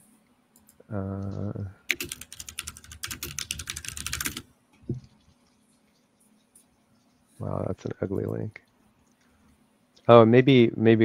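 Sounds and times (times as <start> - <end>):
computer keyboard typing: 1.9 - 4.4.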